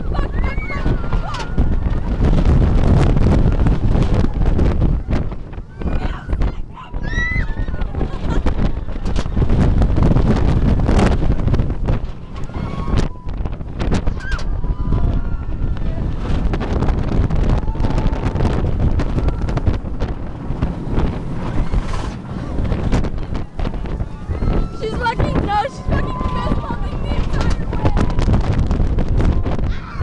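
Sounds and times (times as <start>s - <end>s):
roller coaster train rumbling: 0.0s - 30.0s
wind buffeting microphone: 0.0s - 30.0s.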